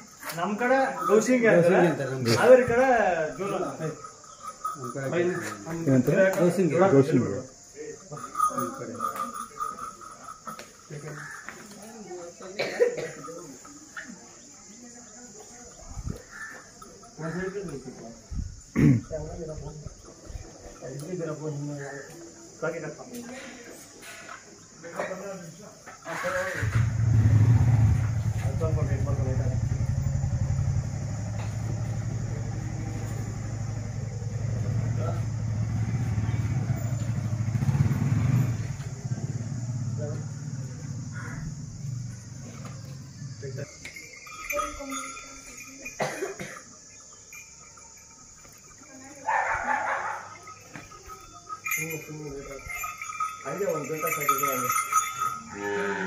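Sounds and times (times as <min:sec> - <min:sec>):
men talking: 0:00.2 - 0:13.8, 0:16.9 - 0:23.8, 0:24.7 - 0:26.9, 0:28.3 - 0:29.8, 0:39.1 - 0:41.5, 0:43.3 - 0:45.0, 0:49.9 - 0:56.0
engine running: 0:26.5 - 0:43.4.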